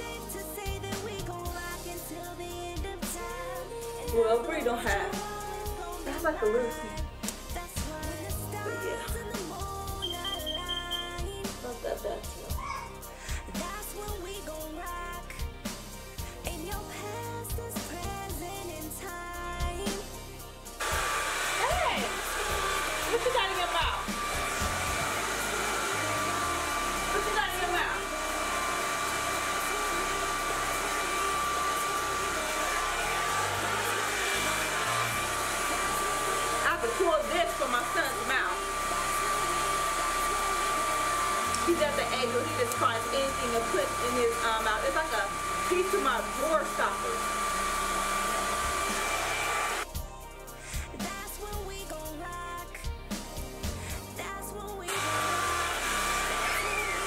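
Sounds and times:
hair dryer running: 0:00.0 - 0:14.6, 0:19.6 - 0:49.9, 0:54.9 - 0:57.0
background music: 0:00.0 - 0:57.0.

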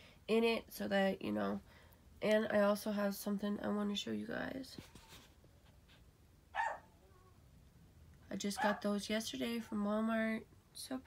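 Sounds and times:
small dog yipping: 0:06.6 - 0:06.9.

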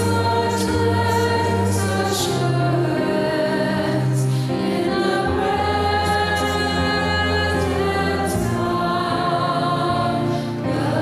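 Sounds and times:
women singing a hymn in harmony: 0:00.0 - 0:11.0.

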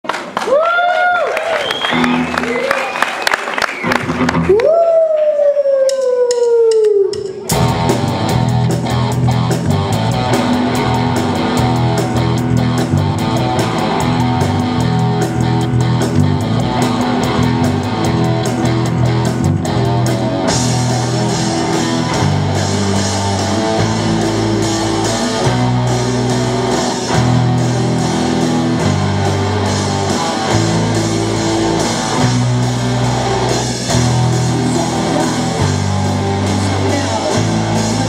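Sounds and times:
rock band playing: 0:01.2 - 0:04.8, 0:05.9 - 0:38.0
electric guitar sliding notes: 0:07.0 - 0:38.0.

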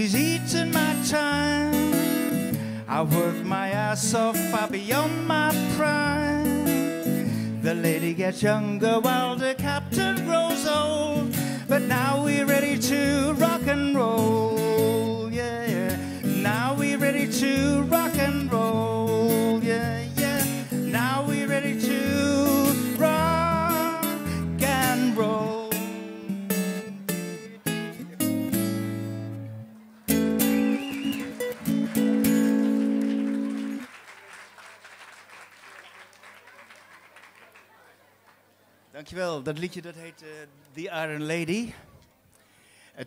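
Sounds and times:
acoustic guitar: 0:00.0 - 0:33.9
wordless singing: 0:07.6 - 0:26.2
soft applause: 0:29.8 - 0:38.9.

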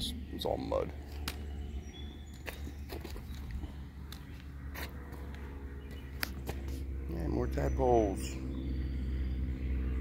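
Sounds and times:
footsteps on rocky mud: 0:02.3 - 0:06.8.

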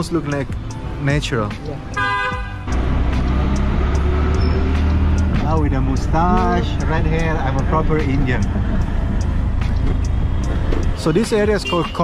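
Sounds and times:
road noise: 0:00.0 - 0:12.0
auto-rickshaw engine running: 0:02.1 - 0:11.7.

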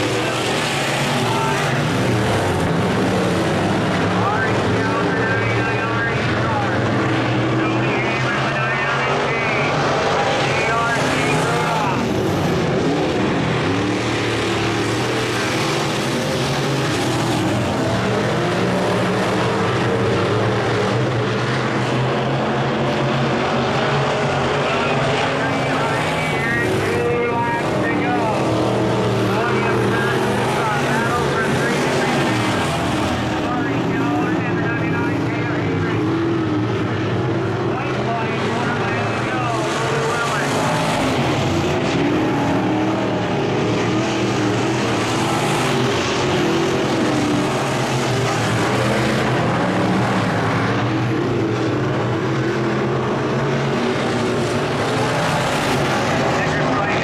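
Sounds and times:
race car engines running hard: 0:00.0 - 0:57.0.

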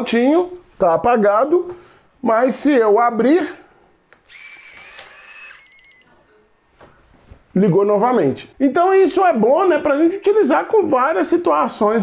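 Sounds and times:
smart lock motor whirring: 0:04.2 - 0:06.0.

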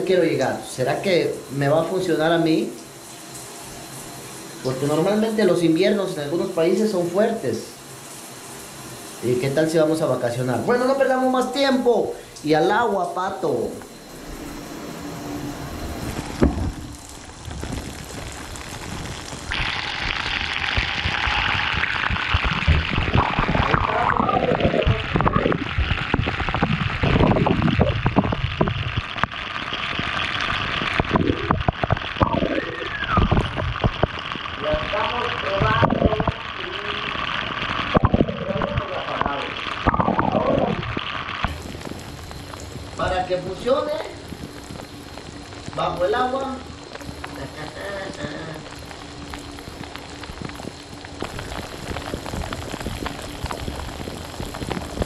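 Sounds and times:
shower water spraying: 0:00.0 - 0:55.0.

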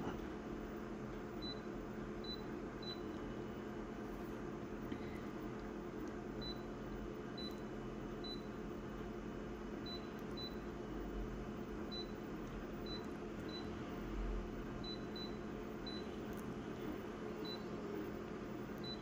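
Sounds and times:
steady low hum: 0:00.0 - 0:19.0
control panel key beeps: 0:18.8 - 0:19.0.

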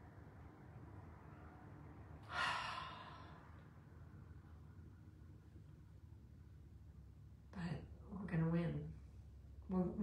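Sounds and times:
faint low room hum: 0:00.0 - 0:10.0
woman sighing: 0:02.3 - 0:03.3.

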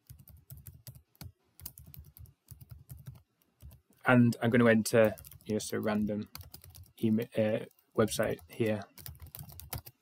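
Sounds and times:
faint keyboard typing: 0:00.0 - 0:10.0.

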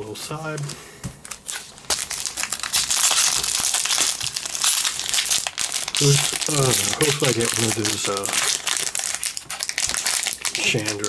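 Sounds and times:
foil wrapper crinkling: 0:00.6 - 0:11.0.

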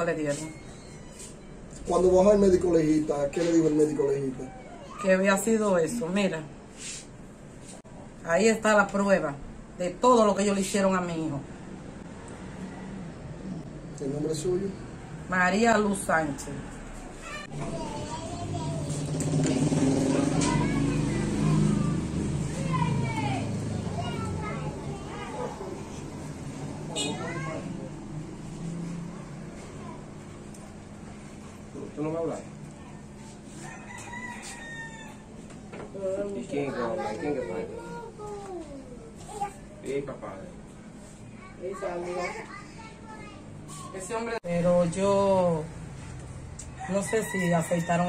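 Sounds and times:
child's high-pitched voice: 0:04.5 - 0:05.1, 0:17.1 - 0:19.1, 0:20.3 - 0:25.8, 0:36.9 - 0:39.8, 0:41.4 - 0:43.9
vehicle engine running: 0:17.6 - 0:31.8.

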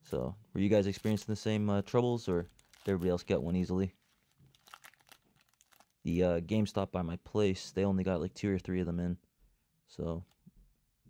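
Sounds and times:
foil wrapper crinkling: 0:00.1 - 0:06.0.

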